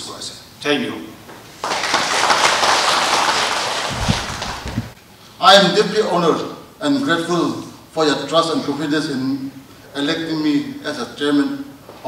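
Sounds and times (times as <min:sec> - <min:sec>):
audience applauding: 0:01.5 - 0:05.0.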